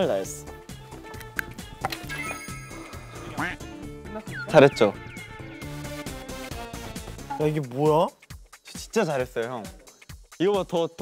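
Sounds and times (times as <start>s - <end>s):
background music: 0.0s - 11.0s
ringing high tones: 2.1s - 3.4s.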